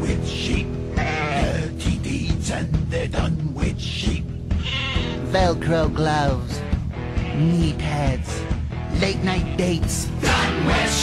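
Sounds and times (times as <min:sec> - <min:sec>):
hard rock band playing: 0:00.0 - 0:03.1, 0:04.1 - 0:11.0
sheep bleating: 0:00.9 - 0:01.7, 0:04.5 - 0:05.2, 0:07.0 - 0:07.8.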